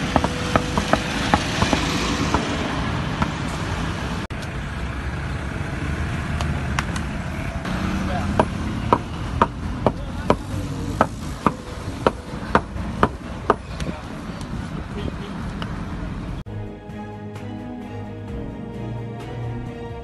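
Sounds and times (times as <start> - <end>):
hammer tapping paving blocks: 0.0 - 2.5, 8.4 - 13.9
road traffic noise: 0.0 - 20.0.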